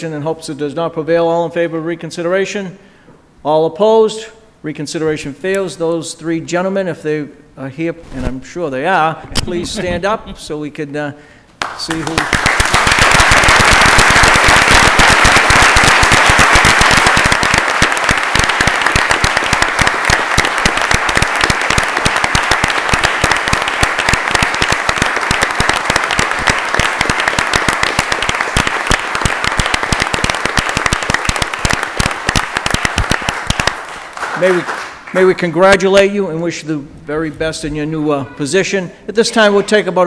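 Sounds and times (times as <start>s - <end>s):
audience applauding: 11.6s - 35.4s.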